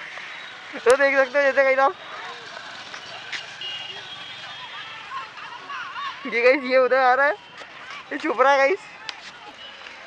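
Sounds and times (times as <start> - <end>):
distant traffic hum: 0.0 - 10.0.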